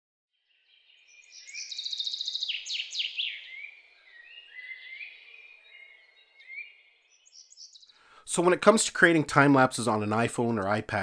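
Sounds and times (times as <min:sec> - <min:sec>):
birds singing with trills: 0:00.4 - 0:08.1.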